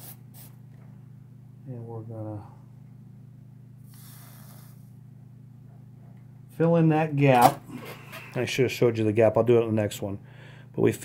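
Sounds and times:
low electrical hum: 0:00.0 - 0:11.0
soldering hiss: 0:03.9 - 0:04.9.

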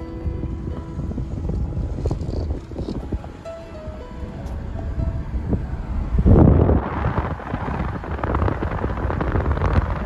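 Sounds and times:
road and engine rumble: 0:00.0 - 0:10.0
wind buffeting microphone: 0:00.0 - 0:10.0.

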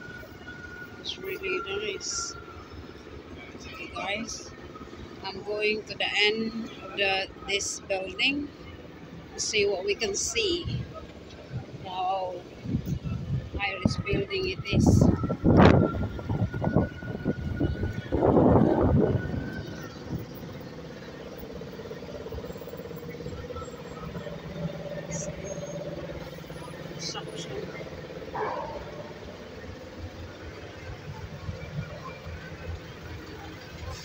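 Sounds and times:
vehicle engine humming: 0:00.0 - 0:34.0
voices: 0:00.0 - 0:34.0.

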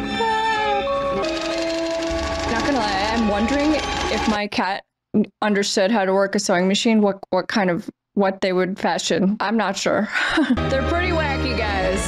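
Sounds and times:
slow orchestral melody: 0:00.0 - 0:02.4.

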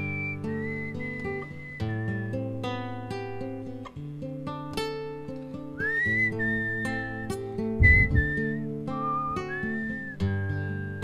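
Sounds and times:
person whistling a melody: 0:00.0 - 0:02.6, 0:05.8 - 0:11.0
acoustic guitar strumming chords: 0:00.0 - 0:11.0
low thump: 0:07.8 - 0:08.4.

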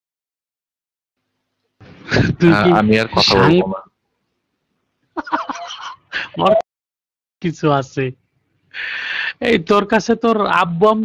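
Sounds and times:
person's voice over voice chat: 0:02.3 - 0:03.9.

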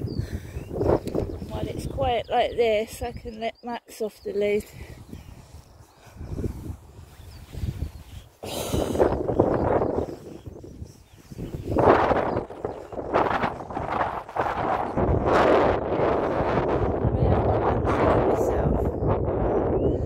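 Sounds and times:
wind buffeting microphone: 0:00.0 - 0:20.0
grass rustling: 0:05.3 - 0:15.8.

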